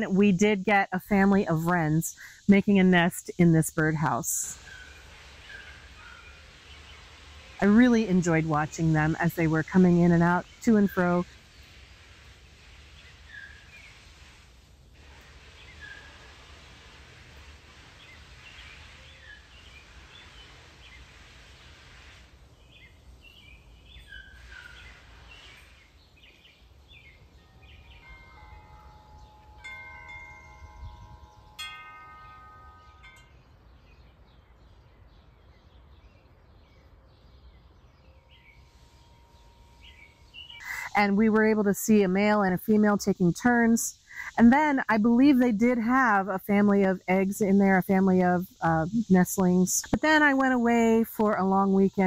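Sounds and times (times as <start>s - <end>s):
small birds chirping: 22.5s - 31.6s, 32.2s - 52.0s
wind chime ringing: 27.8s - 33.6s.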